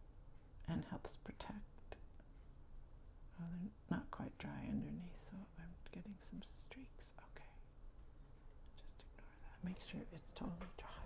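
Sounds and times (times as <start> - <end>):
person whispering: 0.7 - 2.0, 3.3 - 7.7, 8.8 - 11.0
small clicks and taps: 7.2 - 11.0.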